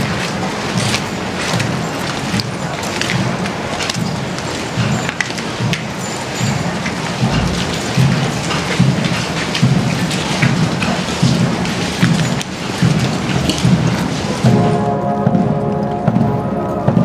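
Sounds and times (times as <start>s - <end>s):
military drums beating slow march: 0.0s - 17.0s
steady rushing noise: 0.0s - 17.0s.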